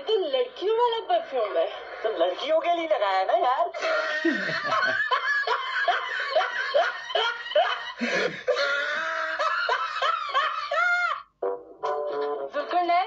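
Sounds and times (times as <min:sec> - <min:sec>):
men laughing: 0:03.8 - 0:11.2.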